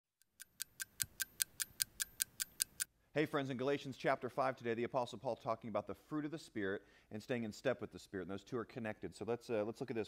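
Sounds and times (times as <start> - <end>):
fast clock ticking: 0.4 - 2.9.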